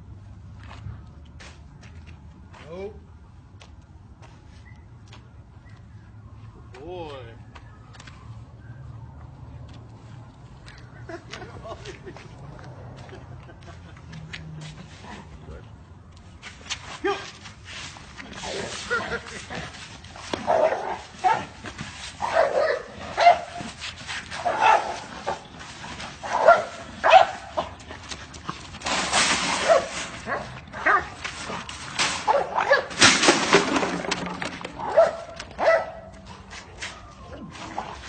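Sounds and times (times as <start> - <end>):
dog barking: 20.5 - 21.5, 22.2 - 23.6, 24.5 - 25.0, 26.3 - 27.5, 32.3 - 32.9, 34.8 - 36.1.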